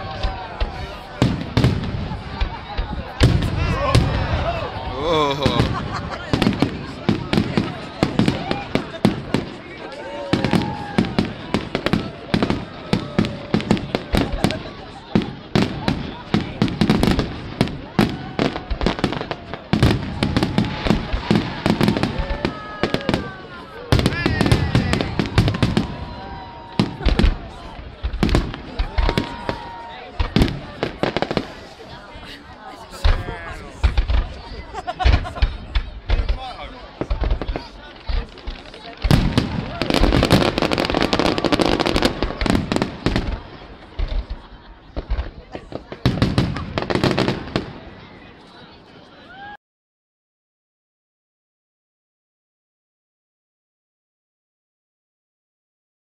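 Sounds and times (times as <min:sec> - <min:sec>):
fireworks bursting: 0:00.0 - 0:48.6
voices of onlookers: 0:00.0 - 0:49.6.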